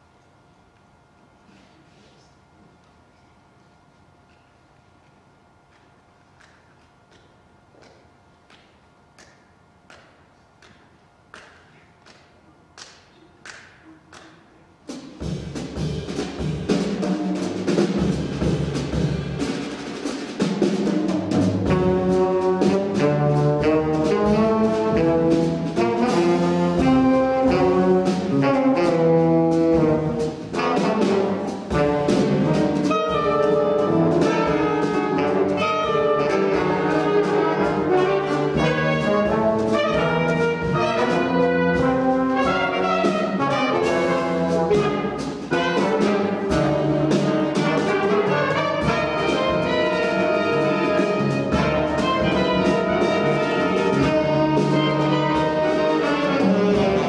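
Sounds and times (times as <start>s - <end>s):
jazz big band playing: 14.8s - 57.0s.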